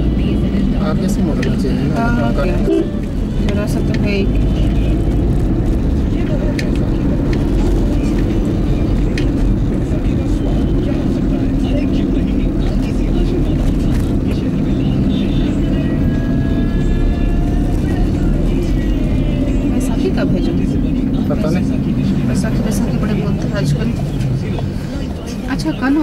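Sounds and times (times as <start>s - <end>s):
car cabin road noise: 0.0s - 26.0s.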